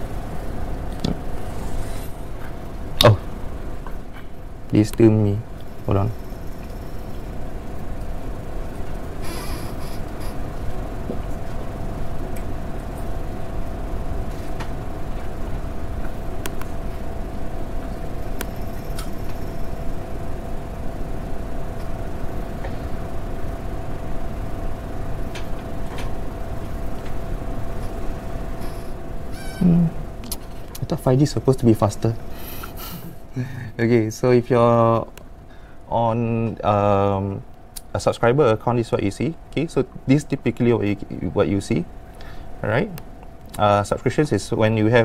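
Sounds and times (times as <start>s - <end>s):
constant hum: 0.0s - 45.0s.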